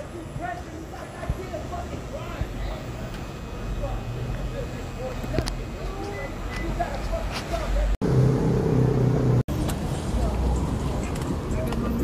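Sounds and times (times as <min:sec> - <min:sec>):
street traffic noise: 0:00.0 - 0:12.0
vehicle engine humming: 0:00.0 - 0:12.0.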